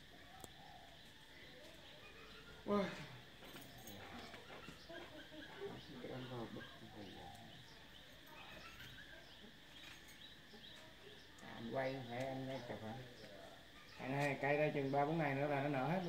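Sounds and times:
faint chirps: 0.0s - 16.0s
faint distant voices: 0.0s - 16.0s.

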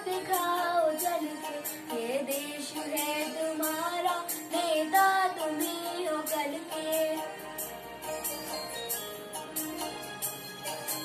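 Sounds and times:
boy singing: 0.0s - 7.2s
backing track with a beat: 0.0s - 11.0s.

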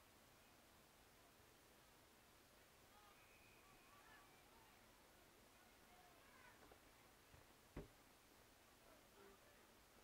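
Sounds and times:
dull thump: 7.7s - 8.0s.

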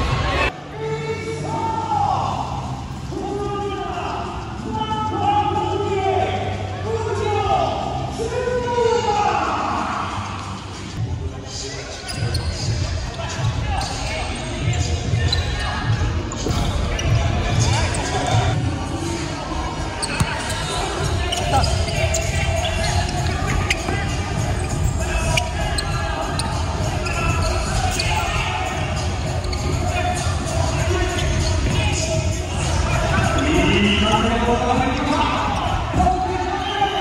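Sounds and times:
voices calling out: 12.0s - 37.0s.

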